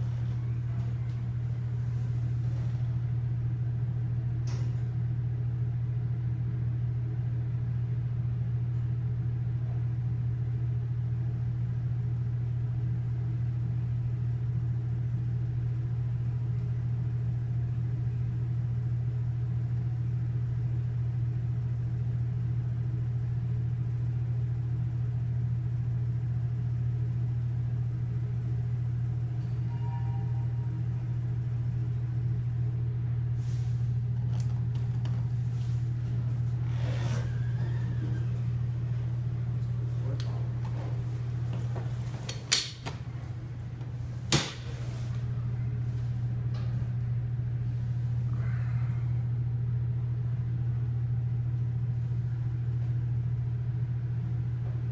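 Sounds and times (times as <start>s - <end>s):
elevator hum and rumble: 0.0s - 54.9s
two-note elevator chime: 29.4s - 30.8s.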